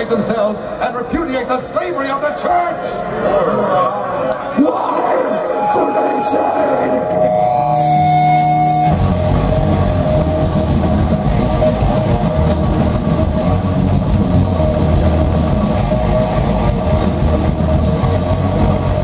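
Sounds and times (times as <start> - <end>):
metal band playing: 5.4 - 19.0
held ringing note: 5.5 - 9.0.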